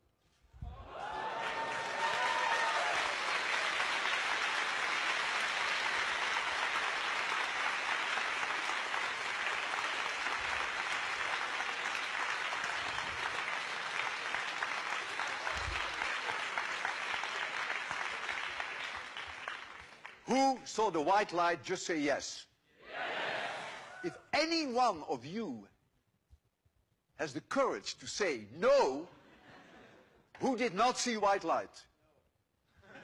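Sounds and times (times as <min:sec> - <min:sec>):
audience applauding: 0:00.8 - 0:20.3.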